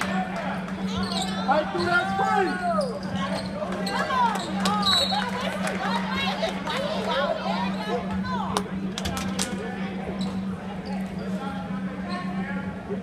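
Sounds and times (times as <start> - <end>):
steady low hum: 0.0 - 13.0
sneakers squeaking: 0.7 - 5.6, 10.1 - 12.5.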